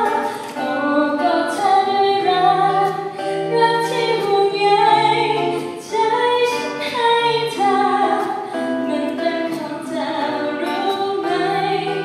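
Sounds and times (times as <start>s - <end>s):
strummed acoustic guitar: 0.0s - 12.0s
women singing pop ballad: 0.0s - 12.0s.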